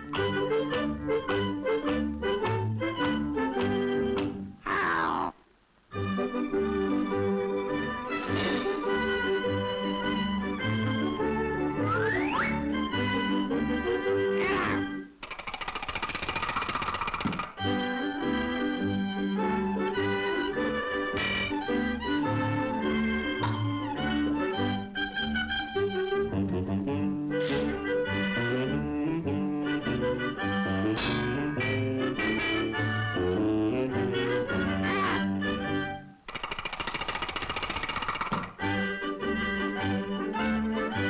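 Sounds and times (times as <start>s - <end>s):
band music: 0.0s - 5.3s, 6.0s - 15.1s, 17.6s - 36.1s, 38.6s - 41.0s
cartoon rattling clatter: 15.2s - 17.6s, 36.3s - 38.6s
soundtrack music: 26.2s - 35.8s.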